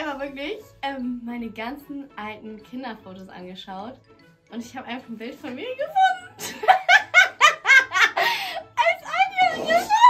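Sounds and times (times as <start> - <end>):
person laughing hard: 6.4 - 8.6.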